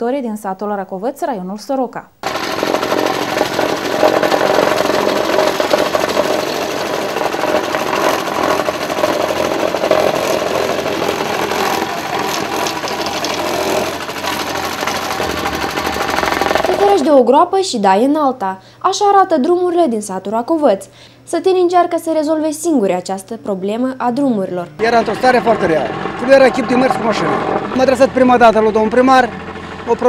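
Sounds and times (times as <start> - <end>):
loud mechanical rattle: 2.2 - 17.2, 24.8 - 30.0.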